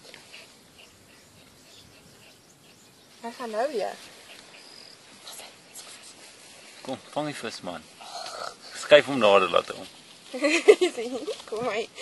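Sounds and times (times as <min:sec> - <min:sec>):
faint insect chirping: 0:00.1 - 0:11.8.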